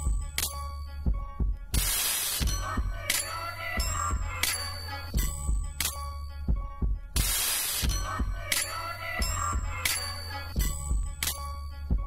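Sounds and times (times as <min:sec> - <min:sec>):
hip-hop beat with deep bass: 0:00.0 - 0:12.0
loud burst of hiss: 0:01.8 - 0:02.4, 0:07.2 - 0:07.9.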